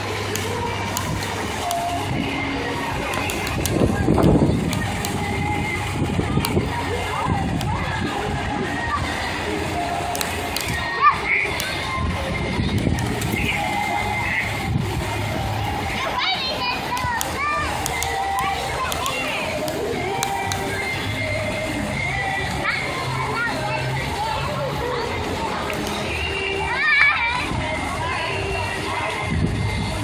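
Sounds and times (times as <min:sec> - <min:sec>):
children's voices and chatter: 0:00.0 - 0:30.0
fountain water splashing: 0:00.0 - 0:30.0
child's high-pitched voice: 0:10.6 - 0:12.2, 0:15.9 - 0:19.6, 0:22.4 - 0:25.2, 0:26.5 - 0:27.7.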